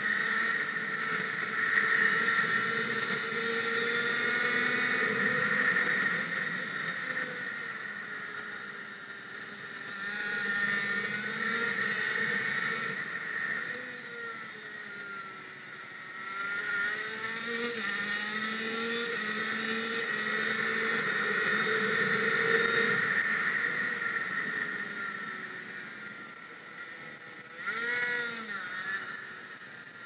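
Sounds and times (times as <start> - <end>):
racing kart engine: 0.0 - 30.0.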